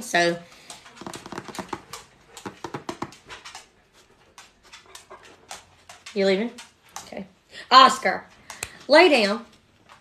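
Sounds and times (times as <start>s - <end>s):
dog clicks and breaths: 0.1s - 7.5s, 8.2s - 10.0s.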